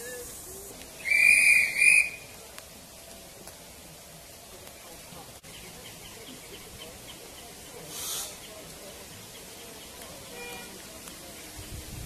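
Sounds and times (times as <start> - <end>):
steam locomotive whistle: 1.0 - 2.2.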